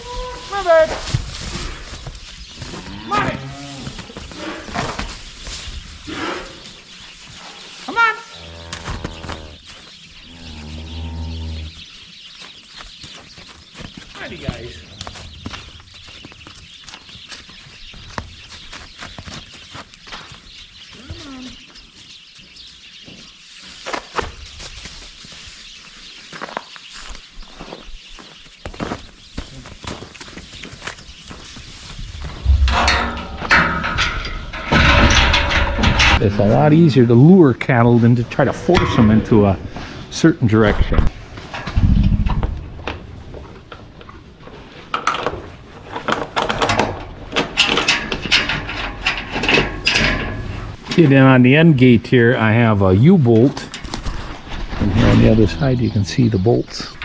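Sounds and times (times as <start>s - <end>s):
cattle moving in bedding: 0.0s - 36.8s
cows mooing: 2.8s - 4.1s, 7.9s - 9.6s, 10.2s - 11.8s, 54.9s - 56.2s
steel gate clattering: 32.4s - 36.5s, 46.3s - 51.3s.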